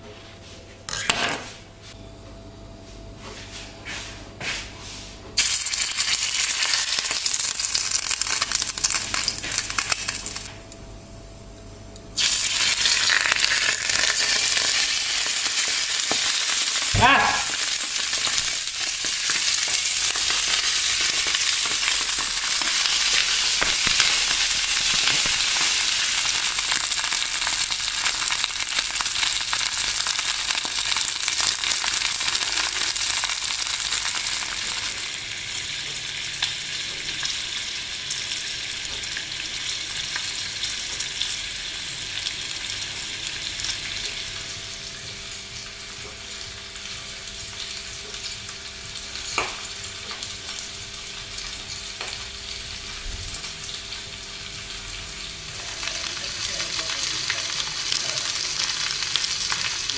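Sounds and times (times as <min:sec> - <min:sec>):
sausages sizzling in oil: 0:05.4 - 0:10.5, 0:12.1 - 0:59.9.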